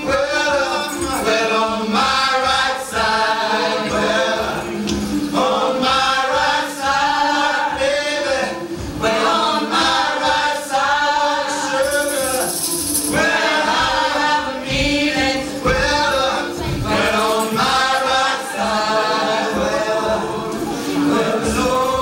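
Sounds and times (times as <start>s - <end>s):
tambourines: 0.0s - 1.9s, 11.2s - 14.3s, 15.2s - 18.3s
group singing in harmony: 0.0s - 22.0s.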